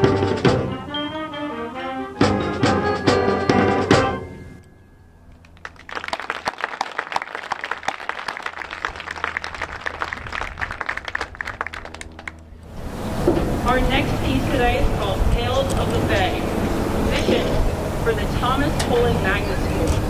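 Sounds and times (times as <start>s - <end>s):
concert band chords: 0.0s - 4.6s
sharp percussion hits: 2.2s - 4.7s
audience applauding: 5.4s - 12.5s.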